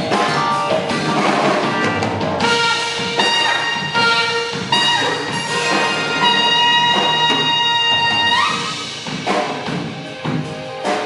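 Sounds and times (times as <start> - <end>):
busy drums and cymbals: 0.0 - 11.0
live jazz band playing: 0.0 - 11.0.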